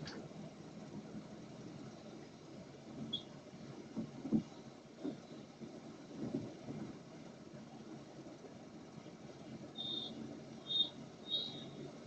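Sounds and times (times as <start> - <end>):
engine and road rumble: 0.0 - 12.0.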